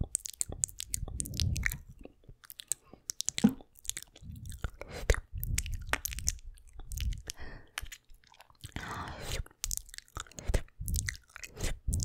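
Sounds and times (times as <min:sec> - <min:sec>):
wet mouth clicks and smacks: 0:00.0 - 0:12.0.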